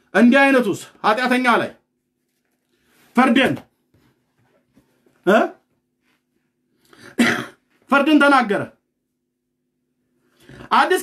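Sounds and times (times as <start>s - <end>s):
man clearing throat: 6.9s - 7.7s
man coughing: 6.9s - 7.7s.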